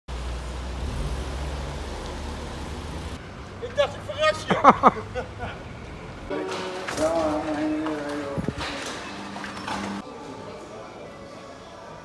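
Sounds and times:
car engine rumble: 0:00.1 - 0:03.7.

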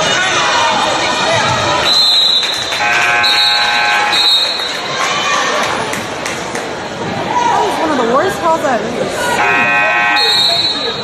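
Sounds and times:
scoreboard horn buzzing: 0:02.7 - 0:04.2, 0:09.4 - 0:11.0.

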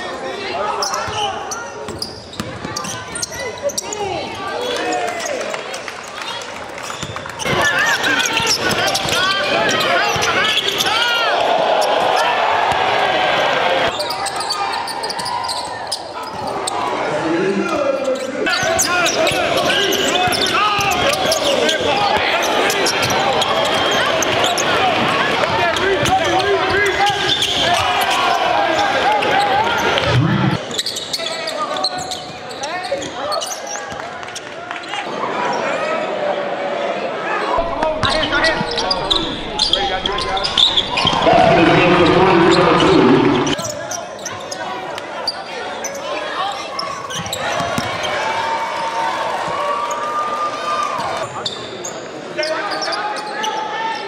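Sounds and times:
crowd noise: 0:00.0 - 0:54.0
voices in echoing hall: 0:00.0 - 0:54.0.

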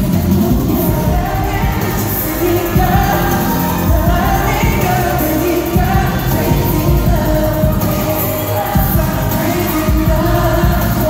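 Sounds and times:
heavy bass beat: 0:00.0 - 0:11.0
live pop music through loudspeakers: 0:00.0 - 0:11.0
man singing: 0:00.0 - 0:11.0.

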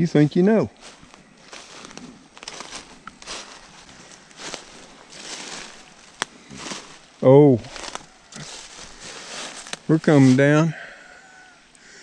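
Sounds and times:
footsteps crunching dry leaves: 0:00.2 - 0:10.8.

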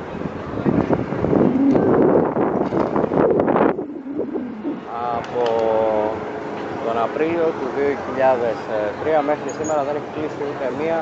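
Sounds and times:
wind noise on microphone: 0:00.0 - 0:06.9
crowd chatter: 0:00.0 - 0:11.0.

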